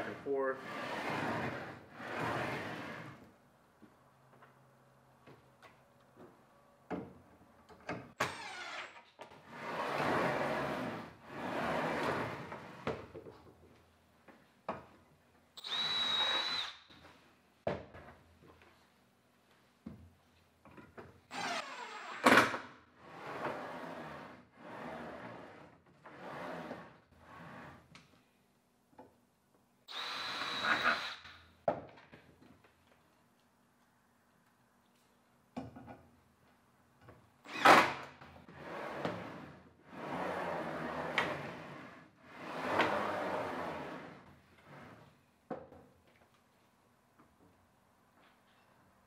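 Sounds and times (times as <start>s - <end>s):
cordless drill driving screws: 8.2s - 9.0s, 15.6s - 16.8s, 29.9s - 31.4s.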